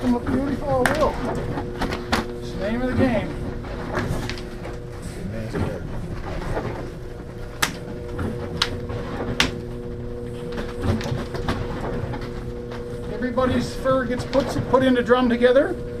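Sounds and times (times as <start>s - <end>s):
steady electrical hum: 0.0s - 16.0s
sharp clicks and knocks: 5.5s - 9.8s.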